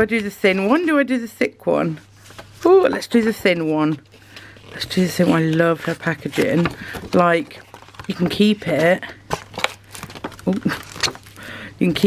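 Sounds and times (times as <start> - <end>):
paper rustling: 2.1 - 11.3.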